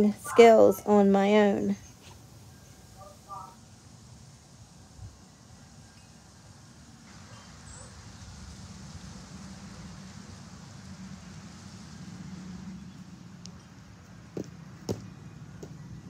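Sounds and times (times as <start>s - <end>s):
low steady outdoor rumble: 0.0s - 16.0s.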